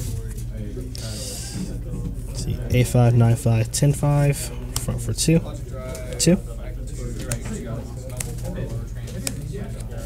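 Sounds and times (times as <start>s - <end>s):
murmur of voices: 0.0s - 10.0s
steady low hum: 0.0s - 10.0s.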